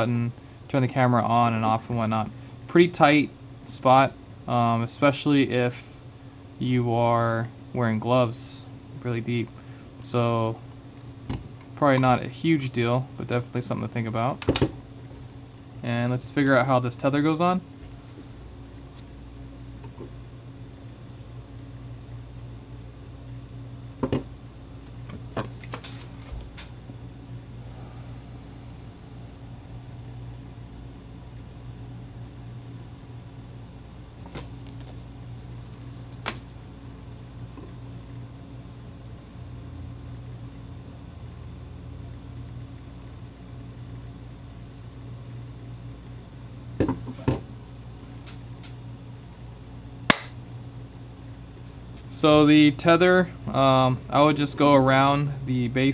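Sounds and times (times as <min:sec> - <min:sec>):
steady low hum: 0:00.0 - 0:55.9.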